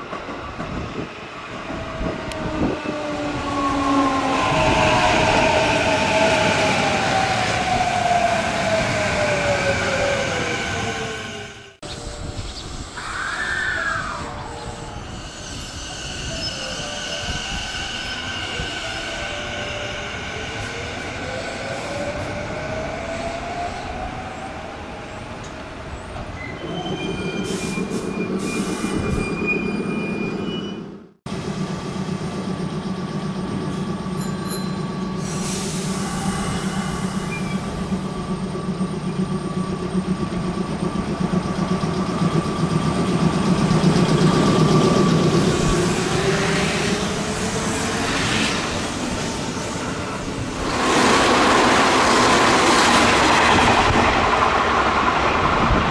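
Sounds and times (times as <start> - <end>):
train low hum: 0.0 - 55.9.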